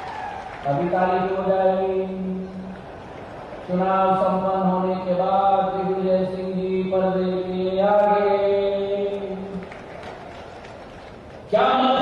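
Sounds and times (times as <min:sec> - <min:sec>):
man chanting through microphones: 0:00.6 - 0:02.7, 0:03.7 - 0:09.7, 0:11.5 - 0:12.0.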